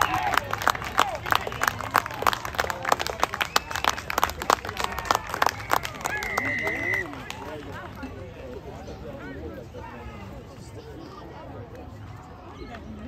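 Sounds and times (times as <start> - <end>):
spectators clapping: 0.0 - 8.4.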